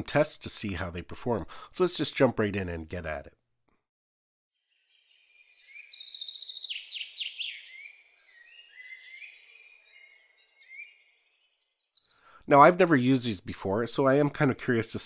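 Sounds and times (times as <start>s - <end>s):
songbirds trilling and chirping: 4.6s - 12.2s.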